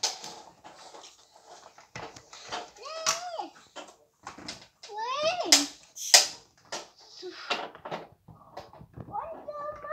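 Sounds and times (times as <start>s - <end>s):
plastic blocks clicking and knocking: 0.0s - 9.9s.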